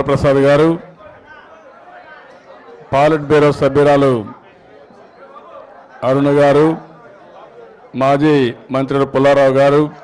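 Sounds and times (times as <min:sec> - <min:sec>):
man speaking into a microphone: 0:00.0 - 0:04.5, 0:06.0 - 0:07.1, 0:07.9 - 0:10.0
murmur of background voices: 0:00.0 - 0:10.0.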